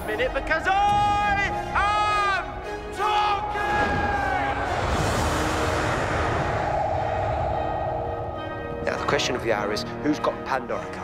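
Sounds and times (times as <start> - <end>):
dramatic orchestral music: 0.0 - 11.0
spaceship rumble and rushing: 4.8 - 9.8
held wavering note: 6.6 - 9.4.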